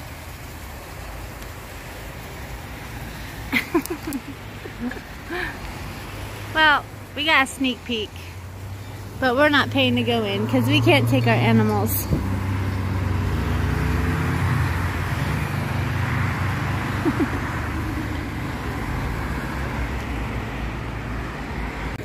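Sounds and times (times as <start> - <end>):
tyre noise of passing cars: 0.0 - 22.0
vehicle engine humming: 0.0 - 22.0.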